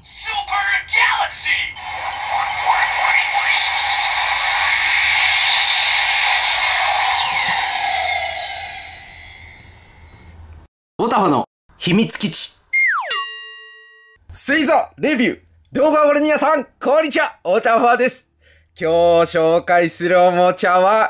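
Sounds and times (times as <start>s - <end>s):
toy voice call: 0.1s - 3.6s
electronic rushing effect: 1.8s - 10.1s.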